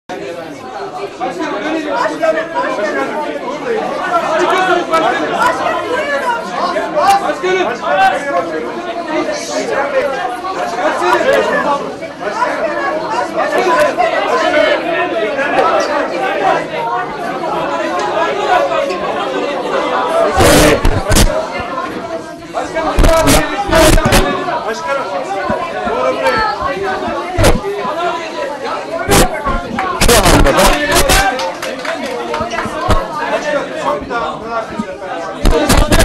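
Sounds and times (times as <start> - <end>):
crowd chatter: 0.1 - 36.0.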